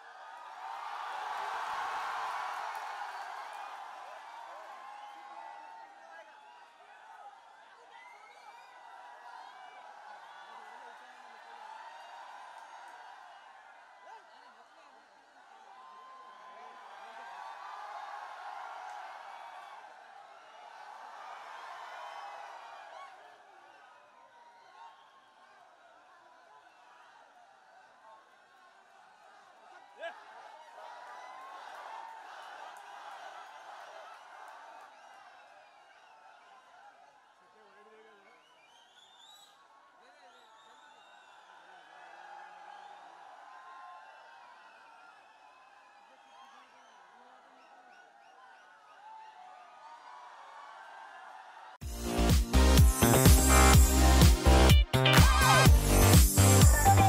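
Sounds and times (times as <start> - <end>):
crowd cheering and shouting: 0.0 - 38.3, 41.2 - 57.0.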